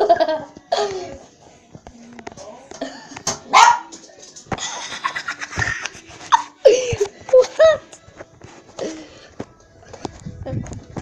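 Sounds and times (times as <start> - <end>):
small dog barking: 3.5 - 3.9.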